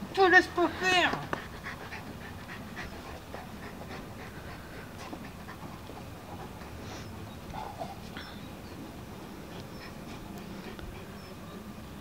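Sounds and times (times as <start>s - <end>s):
dog panting: 1.2s - 11.4s.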